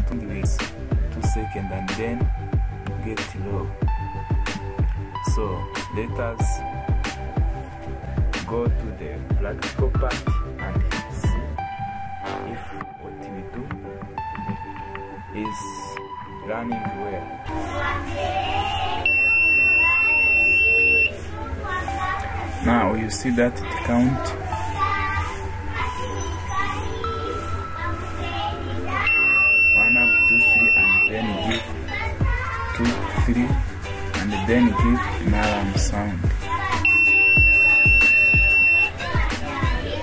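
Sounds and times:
high-pitched buzzer tone: 19.0 - 21.2, 29.0 - 31.2, 36.8 - 39.0.

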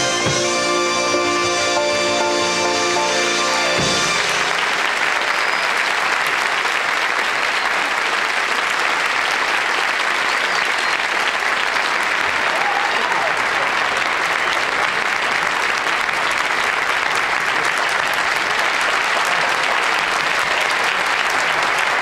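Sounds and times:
audience applauding: 0.0 - 22.0.

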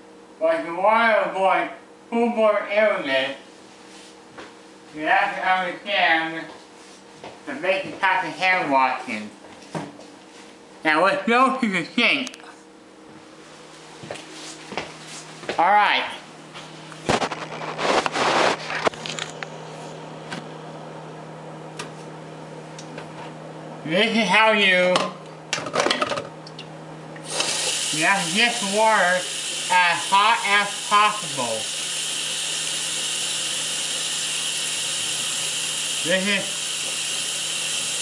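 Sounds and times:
steady low hum: 0.0 - 38.0
faucet running into a steel sink: 27.2 - 38.0.

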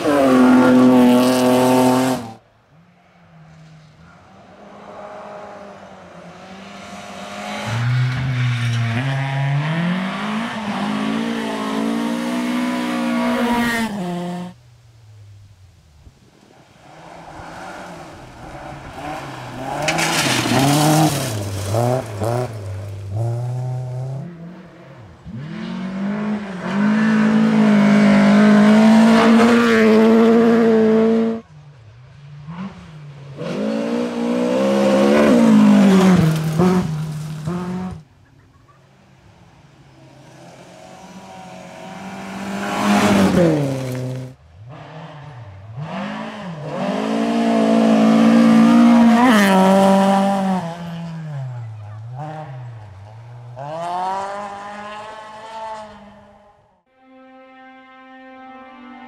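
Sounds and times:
rally car engines revving: 0.0 - 14.6, 16.8 - 56.7.

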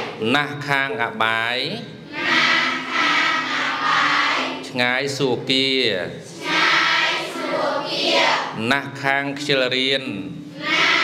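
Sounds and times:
students calling out together: 10.6 - 11.0.

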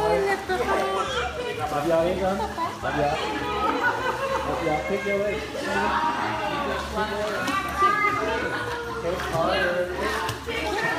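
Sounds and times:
children and adults chattering: 0.0 - 10.9.

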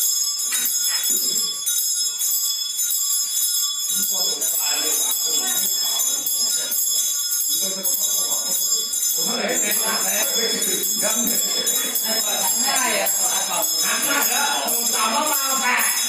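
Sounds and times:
faint voices talking: 0.0 - 16.0
small metal bells jingling: 0.0 - 16.0.

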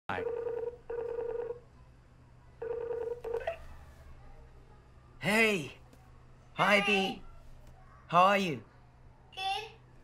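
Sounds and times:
electronic ringing tone: 0.1 - 1.6, 2.6 - 3.4.

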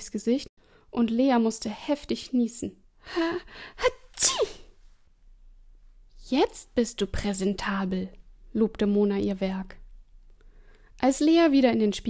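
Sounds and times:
woman acting out sneeze: 3.8 - 4.8.

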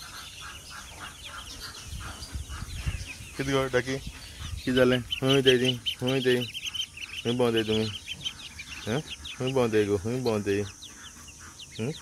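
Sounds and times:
ducklings and chicks peeping: 0.0 - 12.0.

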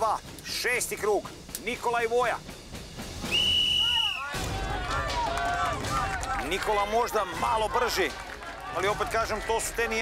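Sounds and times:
whistle blast: 3.2 - 4.5
people shouting: 3.8 - 10.0.

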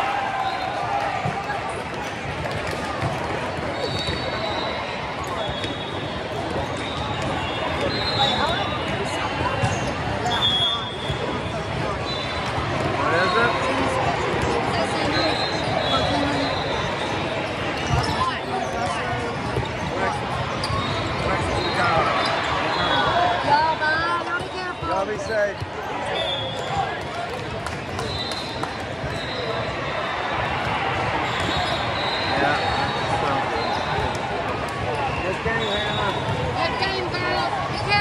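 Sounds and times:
many voices chattering: 0.0 - 38.0
balls hit and bouncing: 1.0 - 10.3, 26.4 - 29.7.

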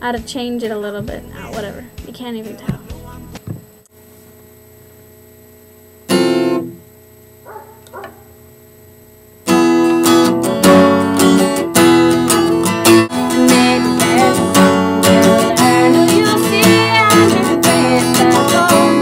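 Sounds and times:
acoustic guitar plucks: 0.0 - 3.6, 9.5 - 19.0
acoustic guitar strumming: 0.0 - 3.8, 6.1 - 6.9, 9.5 - 19.0.

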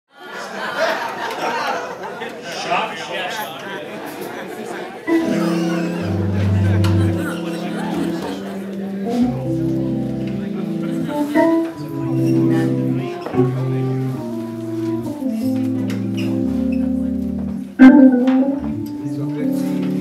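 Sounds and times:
organ playing held chords: 5.1 - 20.0
bass line: 17.8 - 18.8.

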